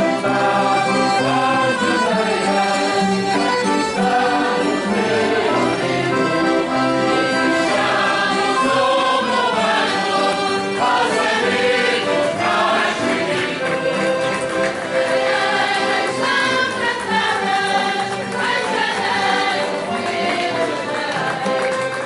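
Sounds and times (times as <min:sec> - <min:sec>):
accordion: 0:00.0 - 0:22.0
group singing in chorus: 0:00.0 - 0:22.0.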